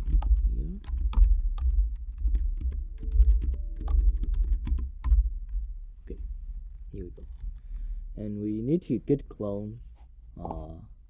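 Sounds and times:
computer keyboard typing: 0.0 - 5.7.

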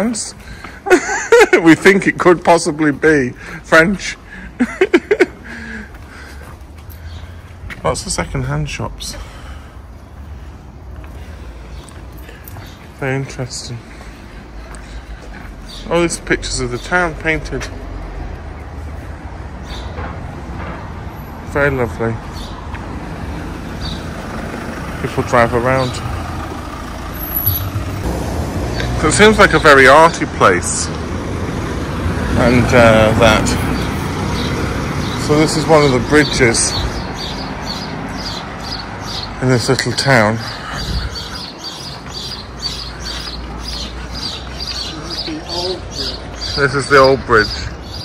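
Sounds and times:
small birds chirping: 0.0 - 20.0, 21.2 - 31.0, 31.9 - 48.0
car engine rumble: 22.8 - 29.6.

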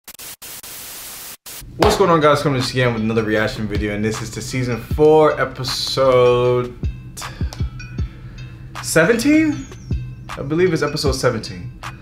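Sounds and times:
man speaking: 1.8 - 7.3, 8.8 - 9.7, 10.4 - 11.8.

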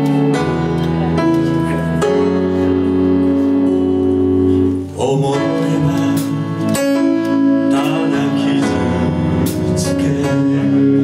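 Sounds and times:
live band holding a chord: 0.0 - 11.0.

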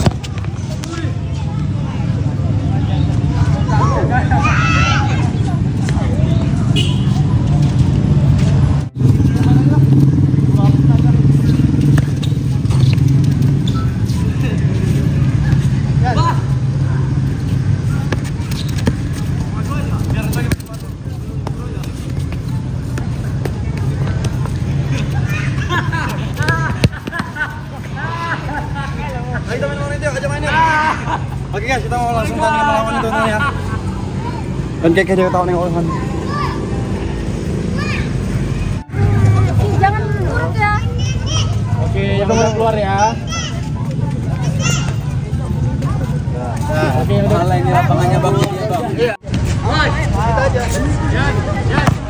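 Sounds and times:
ball kicks: 0.0 - 0.9, 18.0 - 24.6, 26.1 - 27.5, 51.7 - 52.0
players calling out: 9.3 - 34.8.

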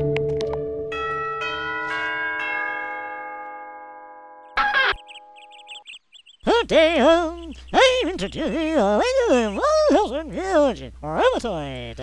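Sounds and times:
cartoon doorbell chime: 0.8 - 5.0.

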